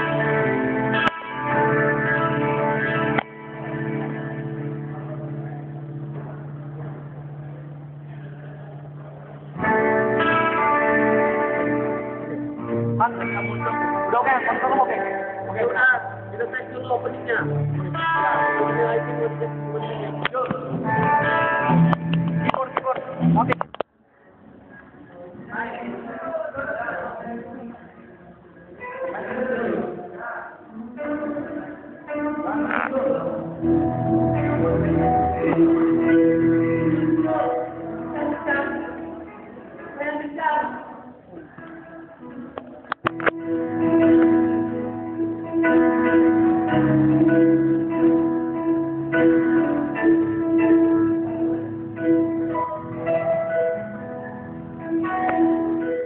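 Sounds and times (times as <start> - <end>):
electric guitar loud chords: 0.0 - 23.8, 28.8 - 56.0
person holding wavering note: 30.8 - 39.4.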